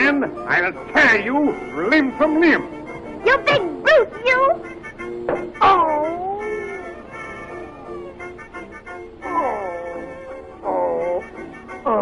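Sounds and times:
background music: 0.0 - 12.0
yelping howl falling in pitch: 5.6 - 8.1, 9.2 - 11.2.

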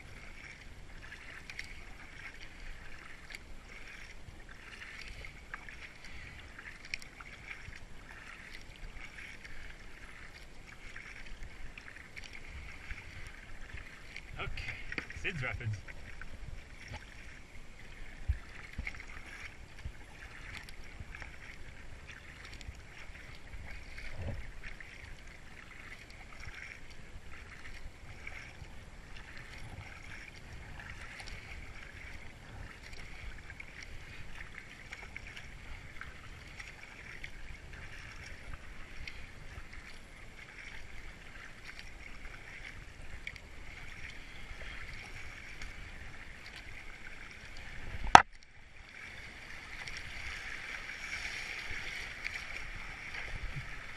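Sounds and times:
paddle splashing in water: 0.0 - 53.9.

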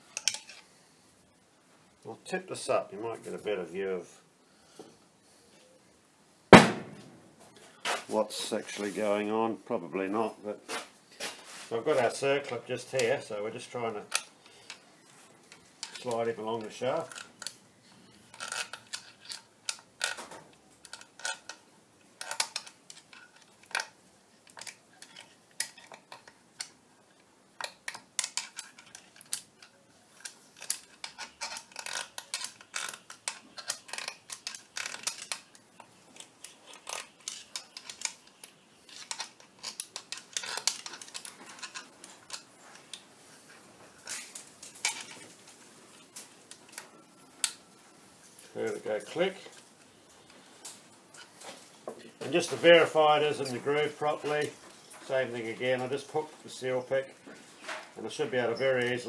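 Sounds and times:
metallic clicks and scrapes: 0.0 - 0.8, 10.7 - 59.0.

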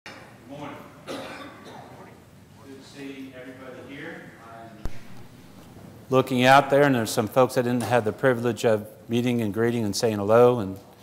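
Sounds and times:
person coughing: 1.1 - 2.0.

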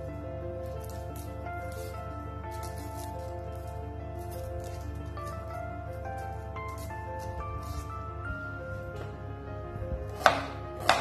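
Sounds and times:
soft background music: 0.0 - 11.0
knife strikes on cutting board: 10.1 - 11.0.

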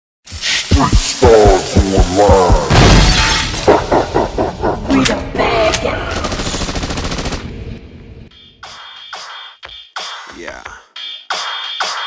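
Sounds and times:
gliding voice-like sounds: 0.4 - 2.7, 3.7 - 6.4
shattering glass crash: 2.7 - 3.7.

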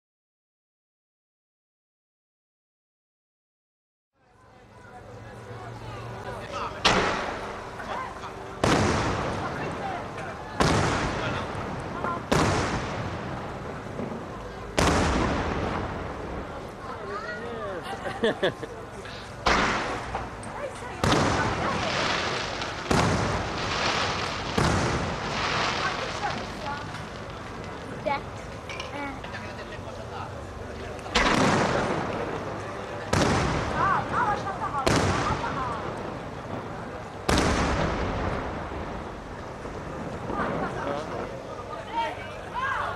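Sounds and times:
firework booms echoing: 8.6 - 16.6, 19.4 - 20.3, 21.0 - 26.9, 31.1 - 32.4, 33.0 - 40.8
firework shells bursting: 19.4 - 20.4, 31.0 - 33.8.

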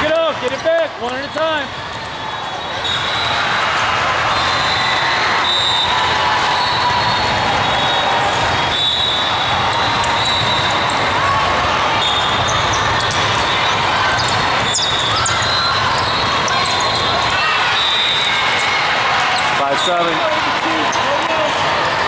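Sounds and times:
crowd chatter: 0.0 - 22.0
athletic shoes squeaking on court: 9.1 - 11.2, 12.0 - 20.2.

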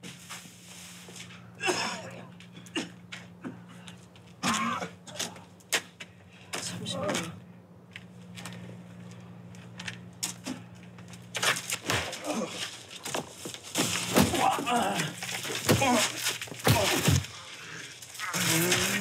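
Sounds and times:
low steady hum: 0.0 - 19.0
movement sounds: 0.0 - 19.0
voices: 6.3 - 7.6, 14.1 - 19.0.

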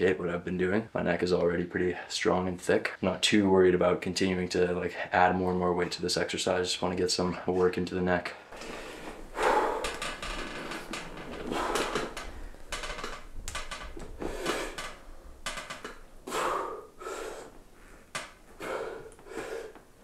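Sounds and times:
man breathing hard: 8.4 - 15.0, 16.2 - 20.0.

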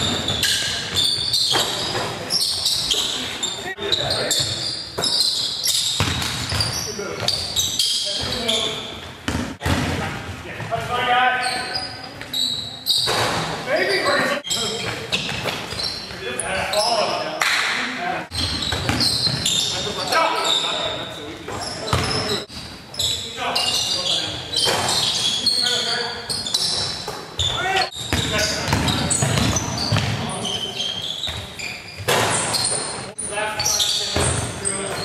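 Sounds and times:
sneaker squeaks: 0.0 - 9.8, 10.6 - 17.2, 18.3 - 35.0
basketball bouncing on hardwood: 6.0 - 6.6, 28.1 - 30.2.

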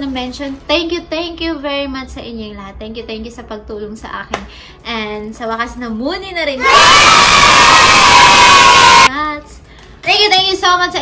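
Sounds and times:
crowd cheering and shouting: 6.6 - 9.1.

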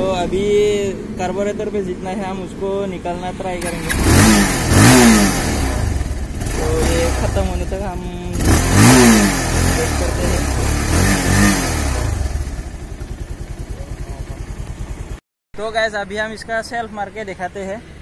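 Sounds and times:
motorcycle engine idling unevenly: 0.0 - 15.2
motorcycle engine revving: 0.0 - 15.2.

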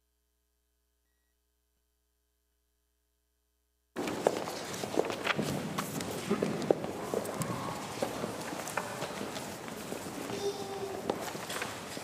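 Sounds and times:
shuffling feet: 4.0 - 12.0.

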